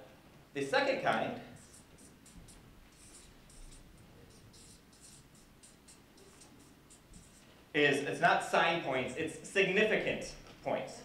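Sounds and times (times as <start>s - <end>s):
marker scraping on paper: 1.1s - 9.6s.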